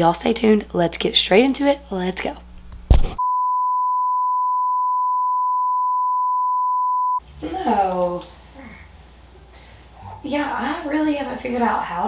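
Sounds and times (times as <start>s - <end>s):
brief thud: 2.9s - 3.2s
steady electronic beep tone: 3.2s - 7.2s.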